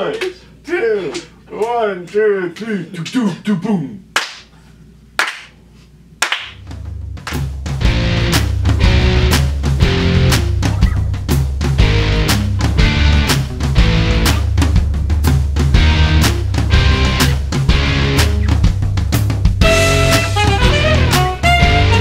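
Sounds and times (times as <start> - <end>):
hand clap: 0.0 - 0.4, 4.2 - 4.6, 5.2 - 5.6, 6.2 - 7.7
drum kit beat: 6.5 - 22.0
heavy bass line: 6.6 - 22.0
guitar: 7.8 - 14.6, 15.7 - 18.8, 19.4 - 22.0.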